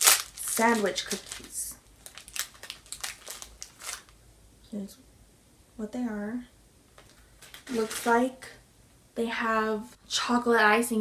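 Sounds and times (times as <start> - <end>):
person crunching a cookie: 2.1 - 4.1.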